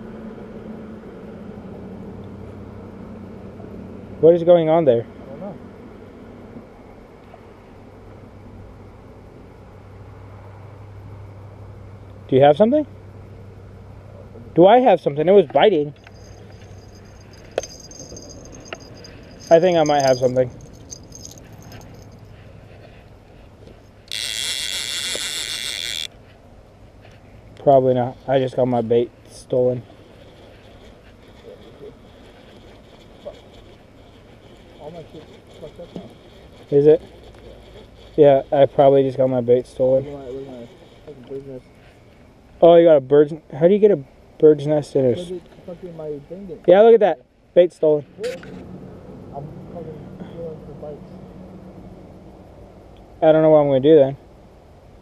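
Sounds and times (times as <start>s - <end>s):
steady low hum: 5.0s - 44.4s
fishing reel whirring: 16.0s - 22.3s, 23.8s - 26.1s.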